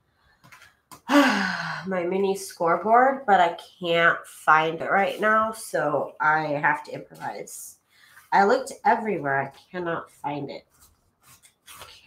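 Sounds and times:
woman sighing: 1.0 - 1.9.

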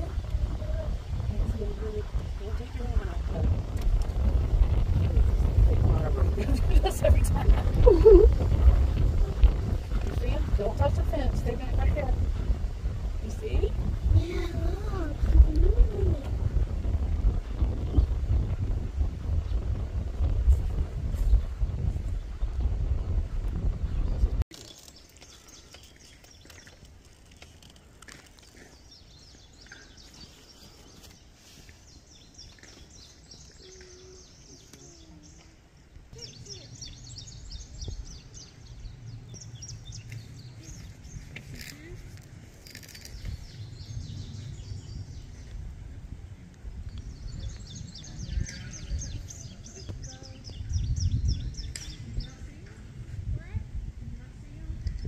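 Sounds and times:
birds chirping: 0.0 - 20.3, 21.0 - 53.0
wind rumbling on microphone: 0.0 - 55.0.

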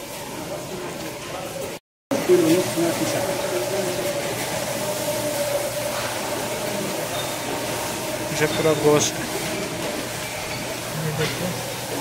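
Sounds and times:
supermarket background hum and hiss: 0.0 - 12.0.

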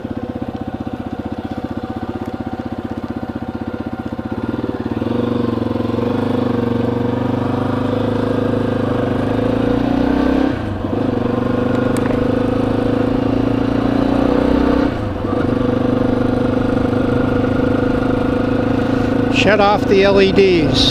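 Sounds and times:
motorcycle engine running: 0.0 - 20.9.

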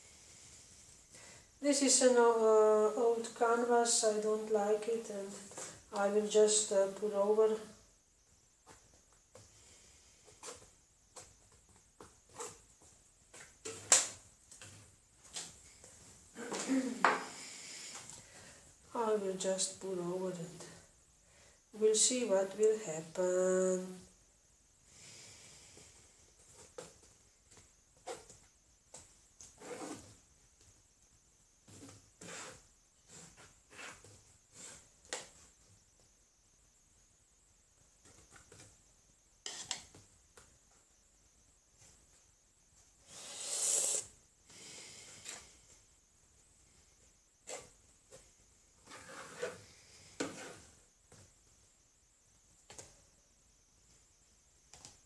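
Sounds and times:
palette knife scraping paint: 31.7 - 34.8, 39.4 - 39.8, 48.8 - 50.8.

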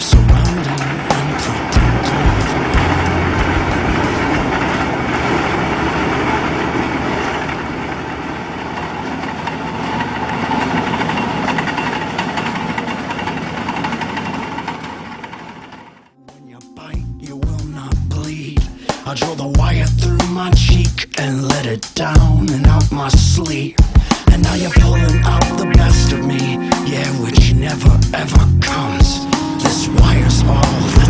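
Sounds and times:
music: 0.0 - 4.9, 16.2 - 31.0
drilling rig engine din: 0.0 - 15.7, 16.9 - 31.0.

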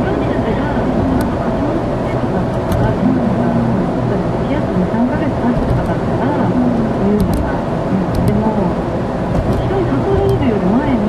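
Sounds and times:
person talking: 0.0 - 8.8, 9.4 - 11.0
car road and engine rumble: 0.0 - 11.0.

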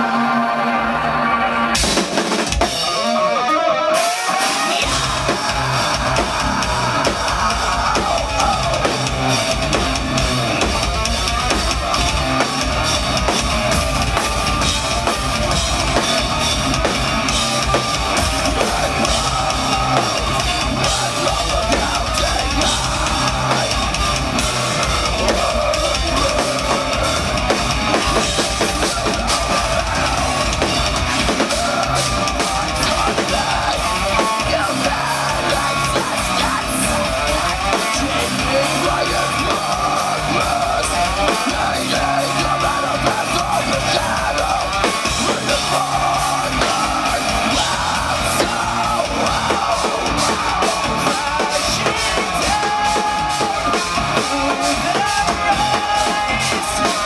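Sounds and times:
distorted guitars: 0.0 - 57.0
heavy drums: 0.0 - 57.0.

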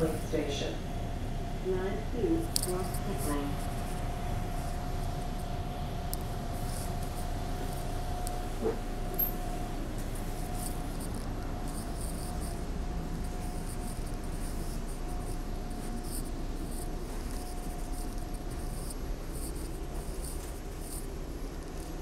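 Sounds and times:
mid-pitched whine: 0.0 - 22.0
subway car rumble and hiss: 0.0 - 22.0.

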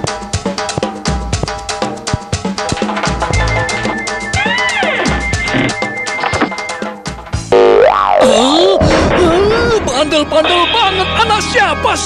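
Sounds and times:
background music: 0.0 - 12.0
cartoon pitch sweep sound effect: 3.9 - 6.5.

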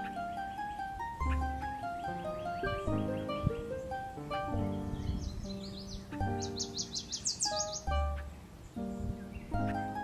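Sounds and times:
bird singing: 0.0 - 10.0
instrumental background music: 0.0 - 10.0.

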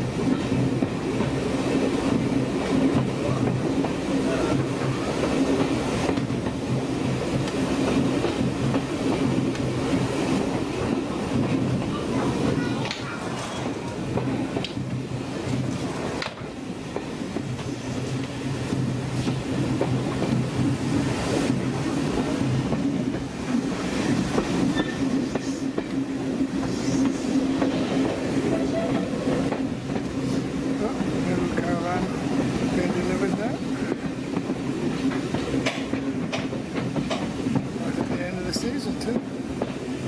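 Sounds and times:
train rumble inside carriage: 0.0 - 40.0
wheels clicking over rail joints: 32.8 - 39.8.

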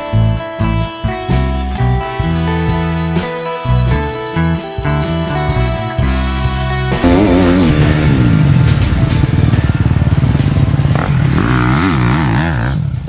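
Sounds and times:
dirt bike engine revving: 6.0 - 13.0.

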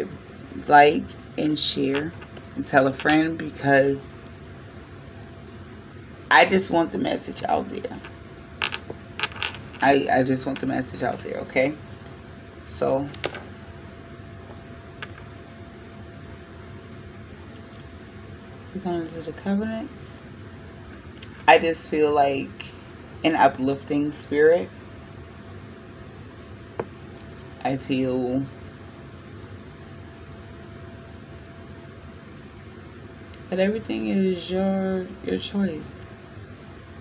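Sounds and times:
room noise: 0.0 - 24.7
faint low hum: 0.0 - 37.0.

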